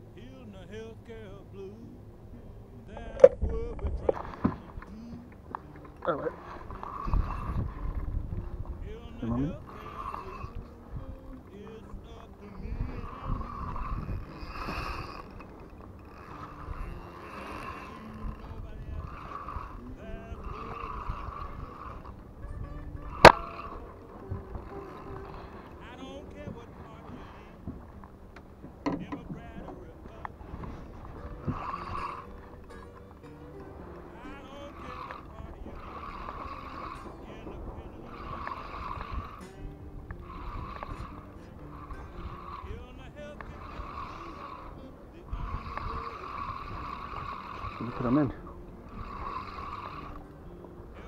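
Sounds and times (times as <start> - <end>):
spinning reel whirring: 12.8 - 22.2, 22.9 - 25.6, 34.9 - 37.0, 38.1 - 39.5, 40.2 - 42.8, 43.5 - 44.7, 45.4 - 50.2.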